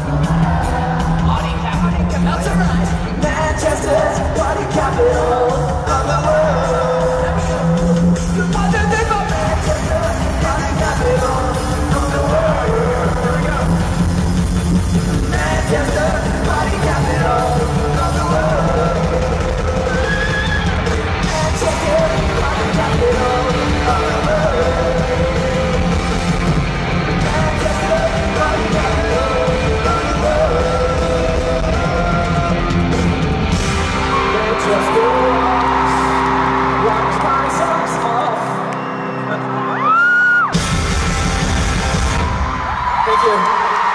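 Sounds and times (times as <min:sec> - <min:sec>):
person singing: 0:00.0 - 0:14.0, 0:15.1 - 0:33.2, 0:34.0 - 0:39.6
live pop-punk band playing: 0:00.0 - 0:42.8
crowd cheering and screaming: 0:00.0 - 0:43.9.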